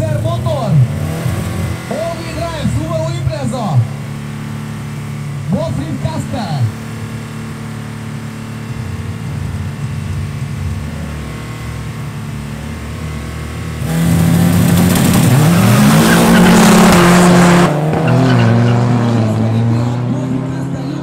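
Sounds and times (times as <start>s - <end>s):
racing car engines accelerating: 0.0s - 21.0s.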